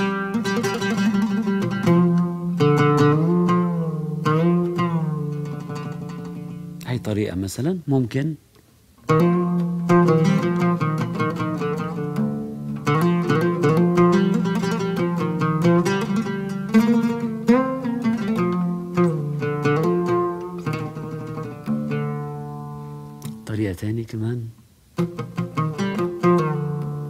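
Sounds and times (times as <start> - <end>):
solo oud playing: 0.0 - 7.8, 9.0 - 27.0.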